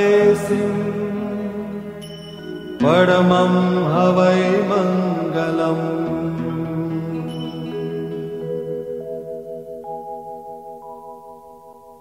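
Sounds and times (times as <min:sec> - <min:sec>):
person chanting: 0:00.0 - 0:02.1, 0:02.8 - 0:08.4.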